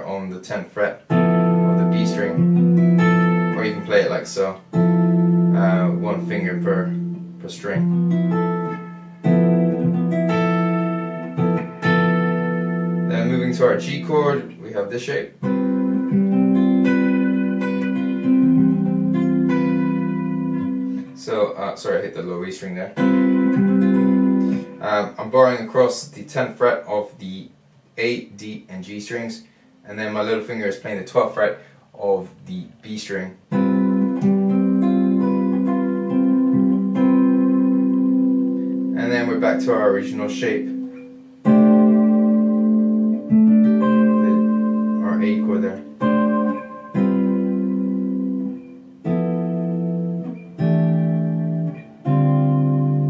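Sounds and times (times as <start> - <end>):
clean electric guitar chord: 1.1 - 14.6, 15.4 - 21.2, 22.9 - 25.2, 33.5 - 53.0.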